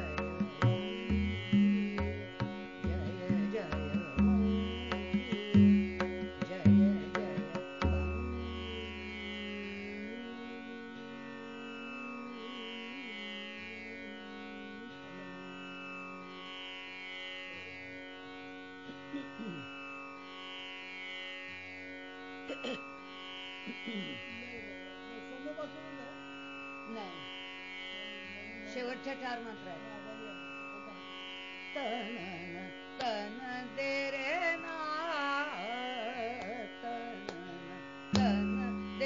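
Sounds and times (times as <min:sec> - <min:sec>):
deep tabla strokes: 0:00.0 - 0:09.6, 0:38.1 - 0:39.0
tanpura drone: 0:00.0 - 0:39.0.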